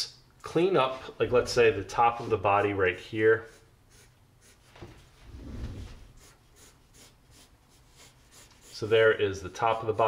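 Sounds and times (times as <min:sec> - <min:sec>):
pencil strokes on paper: 0:00.9 - 0:05.2, 0:05.8 - 0:10.0.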